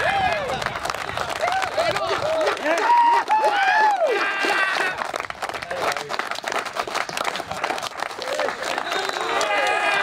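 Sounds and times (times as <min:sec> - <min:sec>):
group clapping hands: 0:00.0 - 0:10.0.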